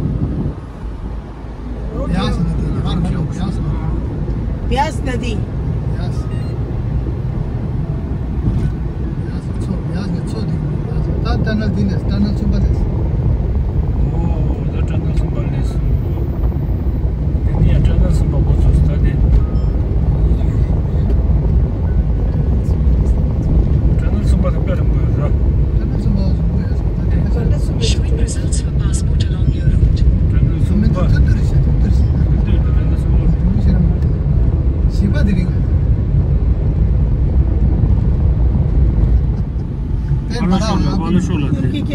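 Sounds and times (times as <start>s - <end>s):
car cabin road rumble: 0.0s - 41.9s
people talking: 1.9s - 4.0s, 4.7s - 6.5s, 9.2s - 12.8s, 14.0s - 15.9s, 17.4s - 19.3s, 24.0s - 34.0s, 34.9s - 35.6s, 40.1s - 41.9s.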